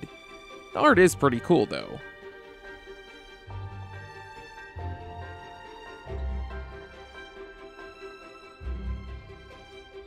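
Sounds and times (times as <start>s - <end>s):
music of sustained held notes: 0.0s - 10.0s.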